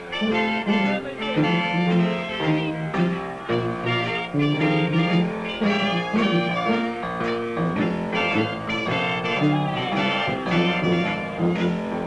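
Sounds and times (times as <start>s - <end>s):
brass horns: 0.0s - 12.0s
jazz band playing: 0.0s - 12.0s.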